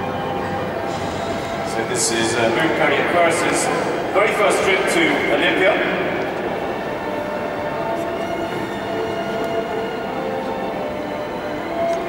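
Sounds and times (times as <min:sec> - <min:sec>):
reverberant arena background noise: 0:00.0 - 0:12.0.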